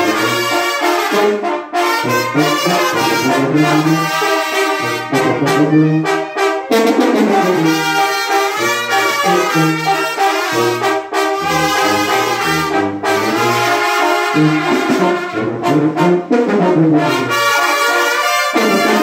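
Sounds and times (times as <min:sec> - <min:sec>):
brass band playing: 0:00.0 - 0:19.0.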